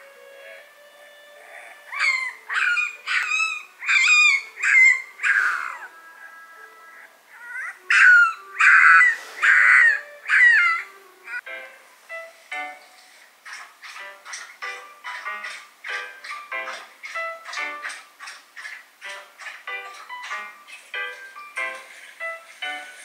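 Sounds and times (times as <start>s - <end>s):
faint background music: 0.0s - 23.0s
puppy whimpering and yelping: 1.4s - 11.4s.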